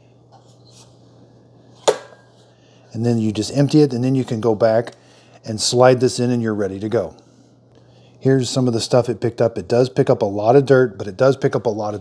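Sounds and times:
plastic lid snapping shut: 0:01.8 - 0:02.2.

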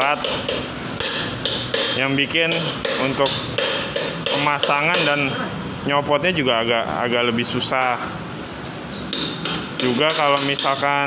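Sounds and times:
metal tools tapping on steel: 0:00.0 - 0:05.3, 0:09.1 - 0:11.0.

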